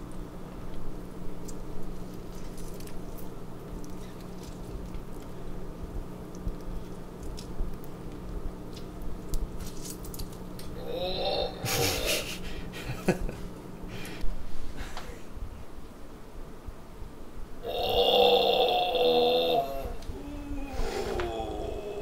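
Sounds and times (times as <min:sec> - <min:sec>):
steady low hum: 0:00.0 - 0:22.0
lime squeezing wet squelches: 0:00.1 - 0:10.8.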